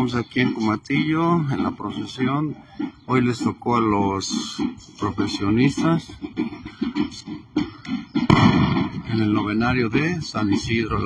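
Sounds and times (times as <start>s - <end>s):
firework bang: 8.3s - 9.1s.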